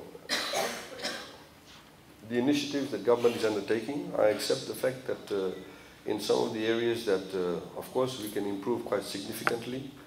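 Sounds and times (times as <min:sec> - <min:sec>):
person coughing: 0:00.3 - 0:01.4.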